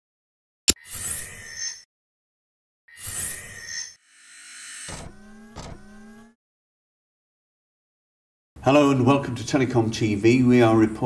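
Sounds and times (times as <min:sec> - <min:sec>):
low rising tone: 0:04.4 - 0:06.4.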